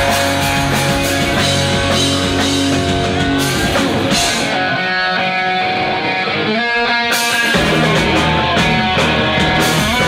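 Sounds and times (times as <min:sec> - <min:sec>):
drums: 0:00.0 - 0:10.0
electric guitars: 0:00.0 - 0:10.0.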